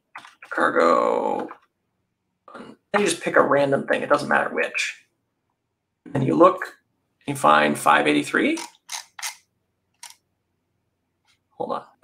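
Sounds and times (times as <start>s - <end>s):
mouse scroll wheel clicks: 8.6s - 9.4s.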